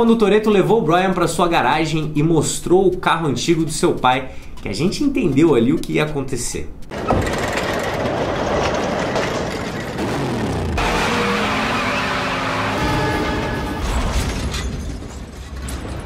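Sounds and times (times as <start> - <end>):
tyres spinning: 6.9 - 16.0
car engine revving: 9.9 - 13.9.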